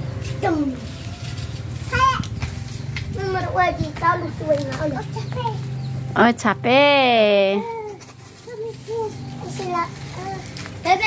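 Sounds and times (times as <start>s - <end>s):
child's high-pitched call: 0.4s - 2.3s.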